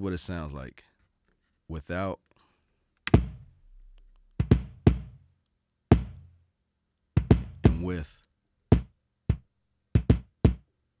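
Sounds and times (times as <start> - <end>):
kick drum with booming tail: 3.2 - 3.5, 4.4 - 5.2, 5.9 - 6.4, 7.2 - 7.9, 8.7 - 9.4, 10.0 - 10.6.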